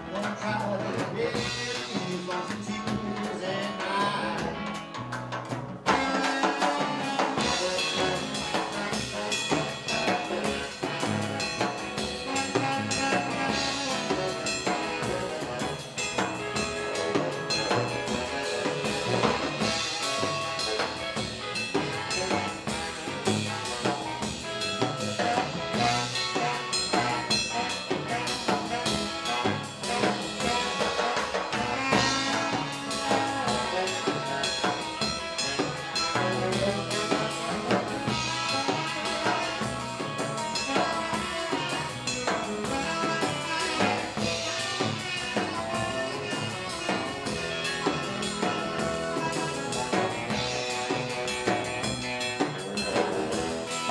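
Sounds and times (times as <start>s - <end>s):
drum kit with rimshots: 0.0s - 53.9s
electric guitar: 0.0s - 53.9s
saxophone lead: 0.0s - 53.9s
upright bass walking line: 6.8s - 53.9s.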